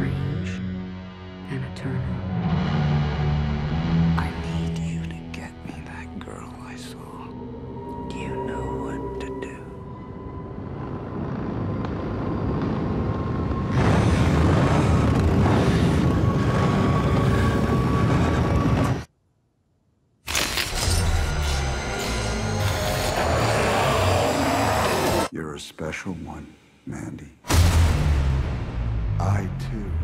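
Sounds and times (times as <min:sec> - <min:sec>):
low steady drone: 0:00.0 - 0:18.0
film trailer sound design: 0:00.0 - 0:19.1, 0:20.3 - 0:30.0.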